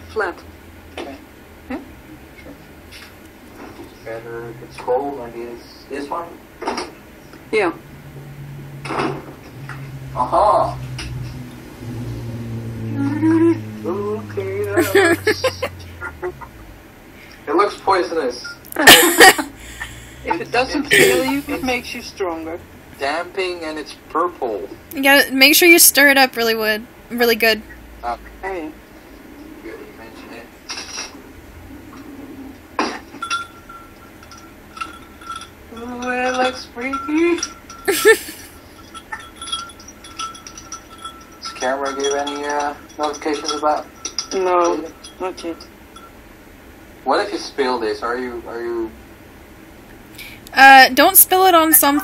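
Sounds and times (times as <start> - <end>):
bottles clinking in refrigerator: 32.8 - 46.2.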